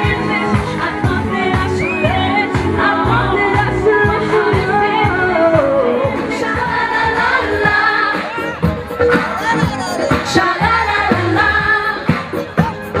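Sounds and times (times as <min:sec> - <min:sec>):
female voices singing pop song: 0:00.0 - 0:13.0
steady drum beat: 0:07.6 - 0:13.0.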